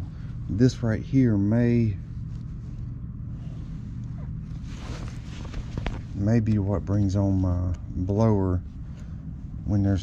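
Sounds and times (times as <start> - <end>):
steady low hum: 0.0 - 10.0
gloved hands rustling wiring: 2.1 - 9.7.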